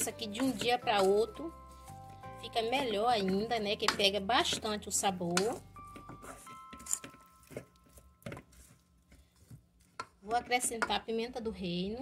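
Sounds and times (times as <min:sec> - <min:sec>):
wooden spoon knocking bowl: 0:00.0 - 0:01.4, 0:02.6 - 0:08.6.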